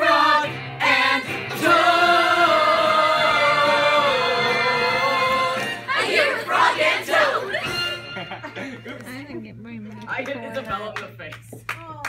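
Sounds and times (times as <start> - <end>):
young voices singing together: 0.0 - 7.8.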